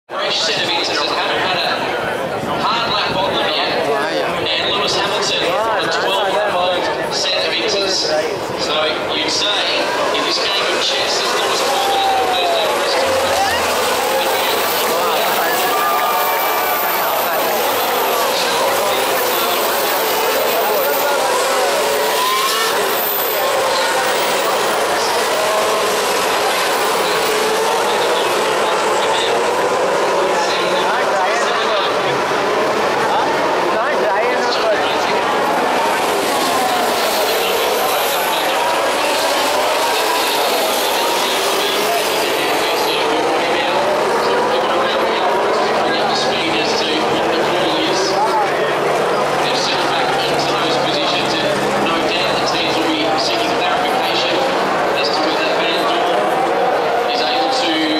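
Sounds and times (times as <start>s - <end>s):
voices: 0.1s - 57.9s
racing car engines passing: 0.2s - 57.9s.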